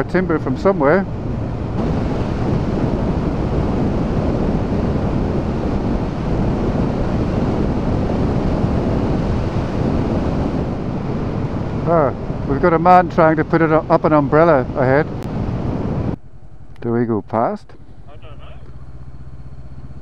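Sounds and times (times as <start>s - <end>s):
wind rush over microphone: 0.0s - 16.2s
motorcycle engine: 0.0s - 20.0s.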